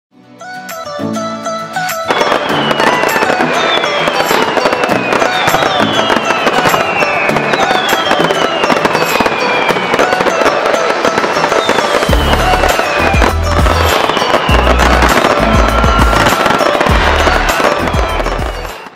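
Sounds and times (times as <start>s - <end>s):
music: 0.1s - 18.9s
fireworks banging and crackling: 1.8s - 18.9s
falling whistles: 2.0s - 18.9s
deep bass beat: 12.1s - 13.9s, 14.5s - 18.7s.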